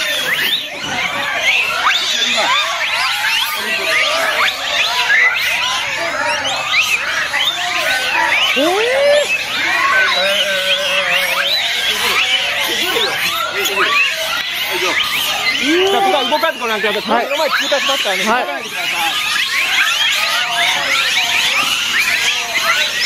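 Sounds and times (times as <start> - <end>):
monkey wavering call: 0.0 - 23.0
monkeys cooing and squealing: 0.0 - 23.0.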